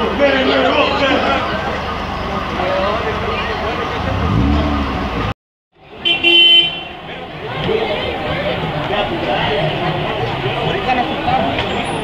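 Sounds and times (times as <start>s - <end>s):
people talking: 0.0s - 6.2s, 6.9s - 12.0s
cars passing: 0.0s - 12.0s
car horn: 6.0s - 7.0s.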